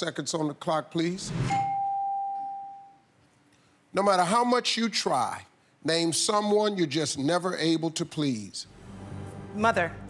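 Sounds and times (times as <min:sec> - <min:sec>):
bell-like chime tone: 0:01.5 - 0:03.0.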